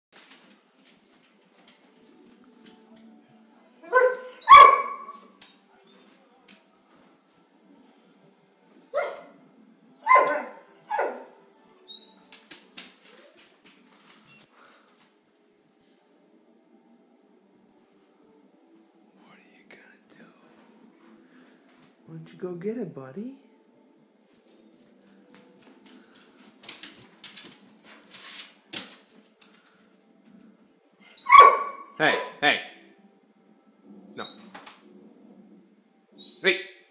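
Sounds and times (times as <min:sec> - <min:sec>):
dog barking: 0:03.8 - 0:05.3, 0:08.9 - 0:09.4, 0:10.0 - 0:11.4, 0:31.2 - 0:32.7.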